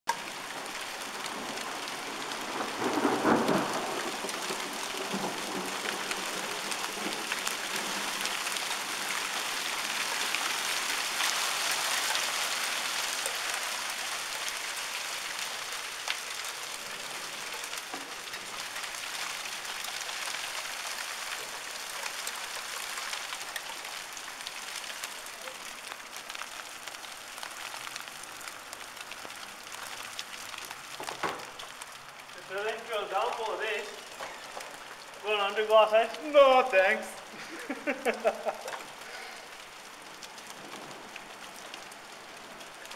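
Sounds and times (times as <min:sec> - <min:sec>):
heavy rain and hail pelting: 0:00.1 - 0:42.9.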